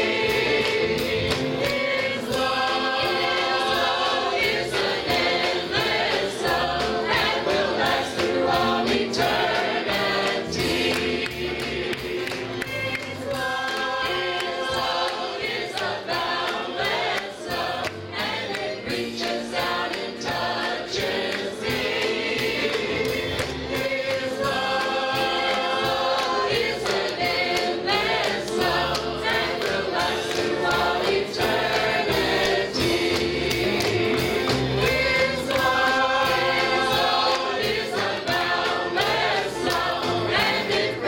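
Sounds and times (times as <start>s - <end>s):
choir singing gospel: 0.0s - 41.0s.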